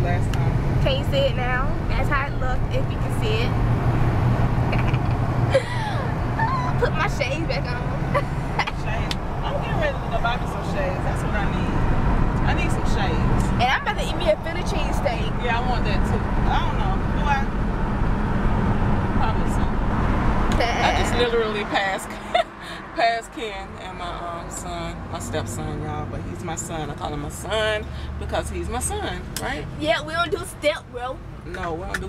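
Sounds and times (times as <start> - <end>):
car engine rumble and road noise: 0.0 - 32.0.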